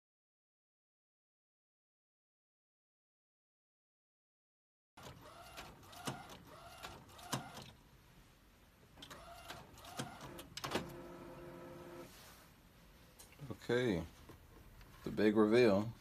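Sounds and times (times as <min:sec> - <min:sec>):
printer carriage whirring back and forth: 0:05.0 - 0:07.7, 0:09.0 - 0:12.1.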